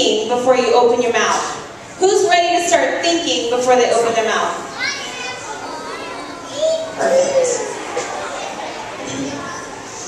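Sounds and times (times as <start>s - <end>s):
children chattering and calling out: 4.4s - 10.0s.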